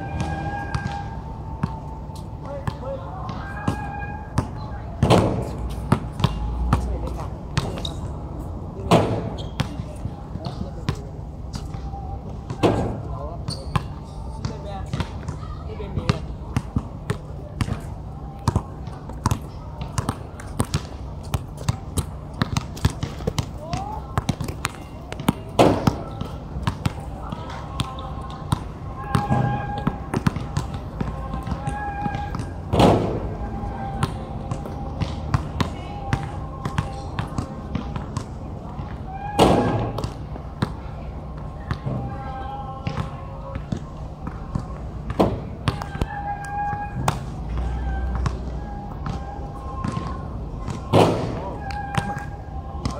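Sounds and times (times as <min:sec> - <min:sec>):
basketballs bouncing on hard court: 0:02.5 - 0:08.0, 0:08.9 - 0:11.0, 0:12.5 - 0:33.3, 0:34.0 - 0:40.8, 0:42.8 - 0:52.9.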